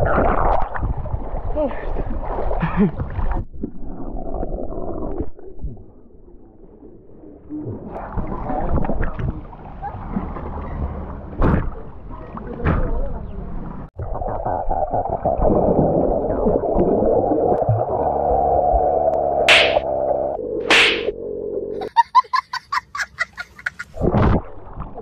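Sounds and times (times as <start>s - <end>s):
muffled underwater sound: 0.0s - 20.2s
sharp splashes: 19.5s - 19.8s, 20.7s - 21.1s.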